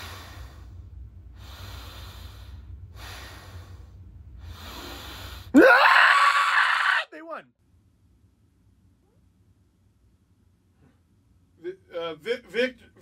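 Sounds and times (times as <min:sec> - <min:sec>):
man breathing heavily: 0:00.0 - 0:05.6.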